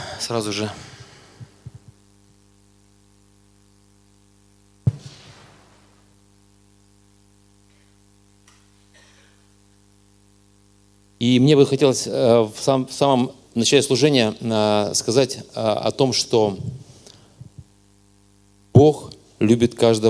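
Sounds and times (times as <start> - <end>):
electrical mains hum: 0.0 - 20.0
sharp thump: 4.9 - 5.9.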